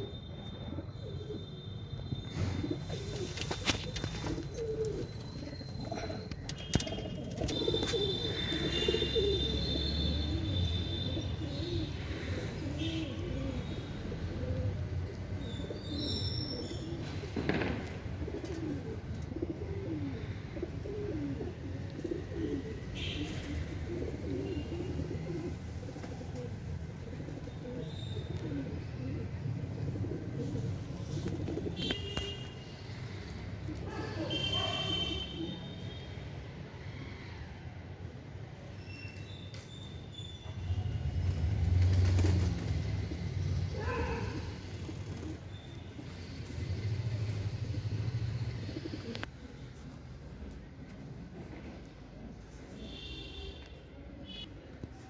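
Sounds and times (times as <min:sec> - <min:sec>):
pigeons cooing: 0:02.4 - 0:35.6, 0:41.9 - 0:53.4.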